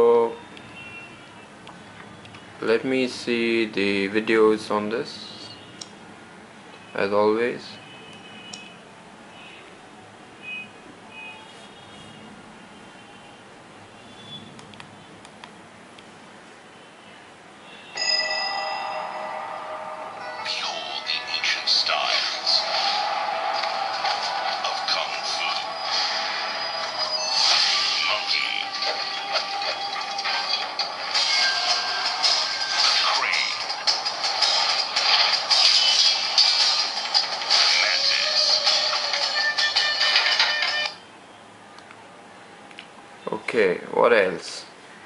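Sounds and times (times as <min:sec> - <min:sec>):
film sound effects: 0:18.5 - 0:41.0.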